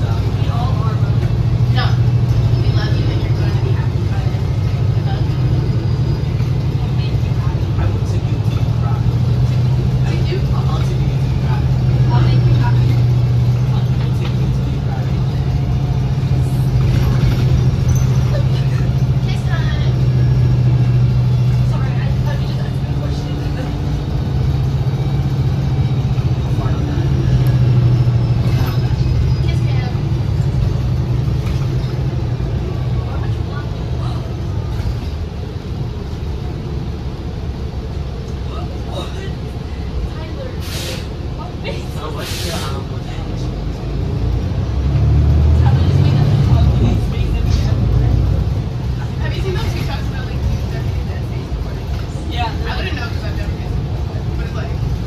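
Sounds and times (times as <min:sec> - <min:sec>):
bus engine drone: 0:00.0 - 0:55.0
road noise: 0:00.0 - 0:55.0.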